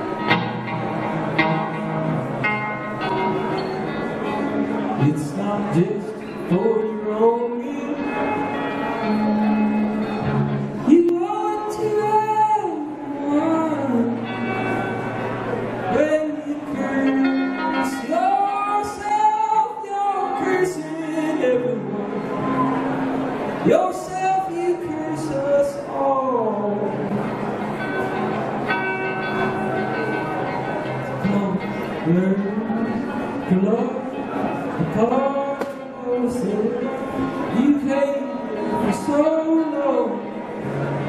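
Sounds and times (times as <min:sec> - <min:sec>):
acoustic guitar: 0:00.0 - 0:41.0.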